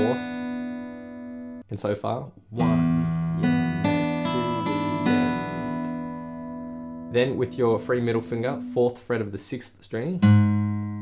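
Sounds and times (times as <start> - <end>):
fingerpicked acoustic guitar: 0.0 - 1.6, 2.5 - 8.9, 10.1 - 11.0.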